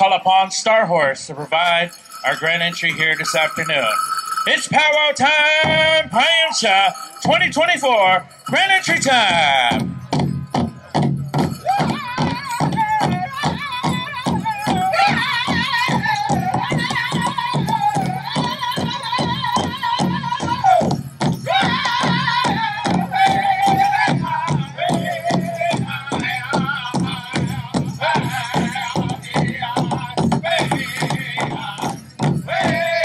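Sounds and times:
big drum fast beat: 0:07.2 - 0:33.0
high voices singing in unison: 0:21.5 - 0:33.0.

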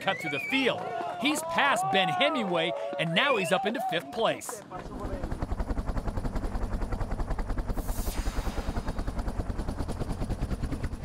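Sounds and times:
helicopter rotor chopping: 0:01.3 - 0:11.0
rush of noise: 0:07.7 - 0:09.5.

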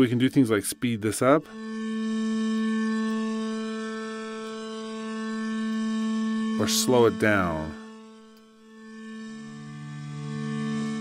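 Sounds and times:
bowed synthesizer note: 0:00.0 - 0:11.0.

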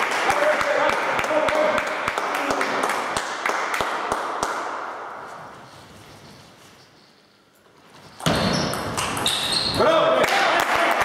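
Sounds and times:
applause in a hall: 0:00.0 - 0:04.7, 0:10.2 - 0:11.0
sharp evenly spaced claps: 0:00.0 - 0:05.2.

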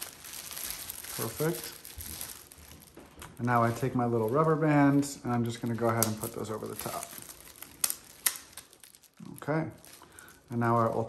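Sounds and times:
plastic sheath crinkling: 0:00.0 - 0:11.0.

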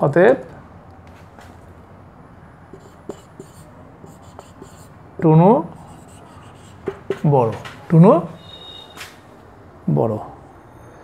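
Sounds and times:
marker pen squeaking on whiteboard: 0:02.7 - 0:04.9, 0:05.8 - 0:07.3.

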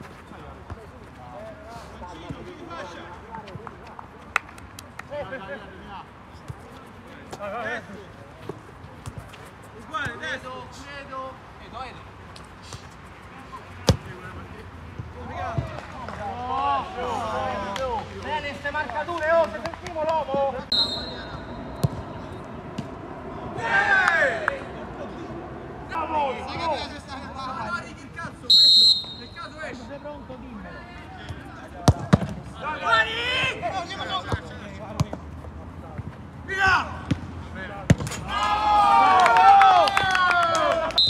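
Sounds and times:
players shouting and cheering: 0:13.9 - 0:35.2, 0:36.4 - 0:41.0
shrill whistle blast: 0:20.7 - 0:21.8, 0:28.5 - 0:29.4
football being kicked: 0:21.8 - 0:22.9
men shouting: 0:23.4 - 0:24.6.

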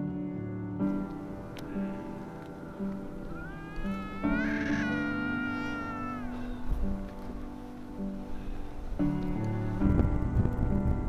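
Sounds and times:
soft background piano music: 0:00.0 - 0:11.0
long mewing animal call: 0:01.4 - 0:07.5.

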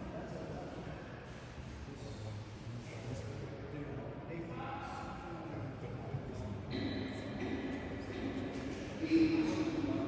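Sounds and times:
distant voices echoing in hall: 0:03.7 - 0:10.0.

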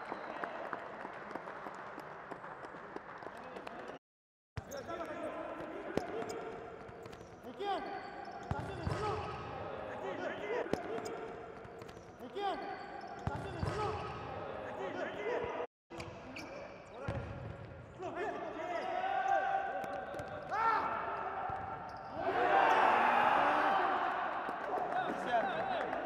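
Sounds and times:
players shouting in echoing hall: 0:04.8 - 0:15.7, 0:17.9 - 0:26.0.

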